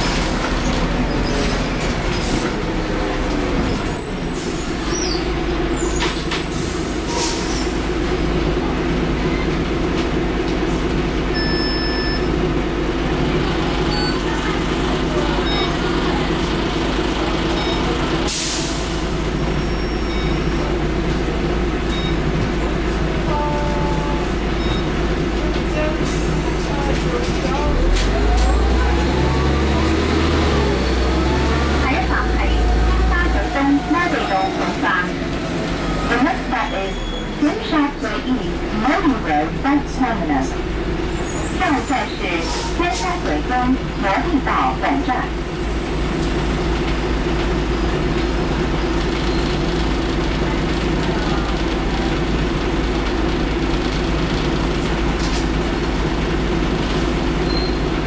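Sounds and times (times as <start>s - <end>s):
bus diesel engine running: 0.0s - 58.0s.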